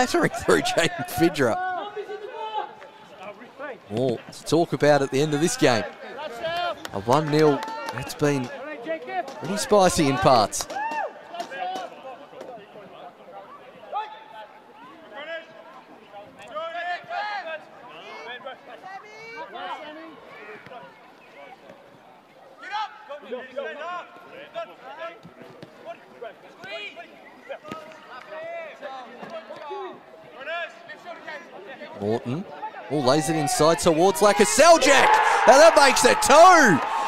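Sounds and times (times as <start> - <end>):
players shouting: 0.0 - 1.6, 32.9 - 37.0.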